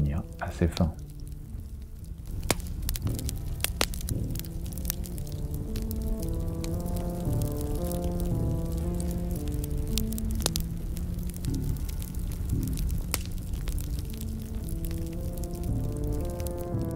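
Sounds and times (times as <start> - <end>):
slow held music notes: 0.0 - 16.9
short crackles: 0.3 - 16.9.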